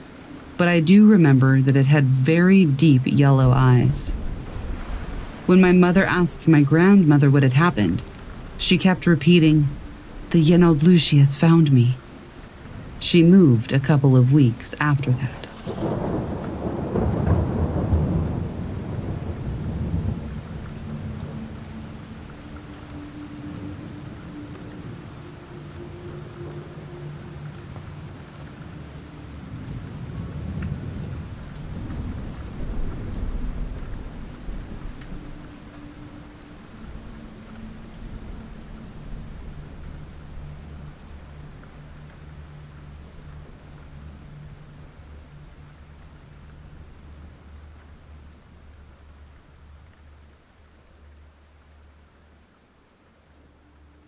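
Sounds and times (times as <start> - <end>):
steady rain falling: 0.0 - 54.0
thunder rumbling: 0.6 - 11.9, 12.6 - 42.0.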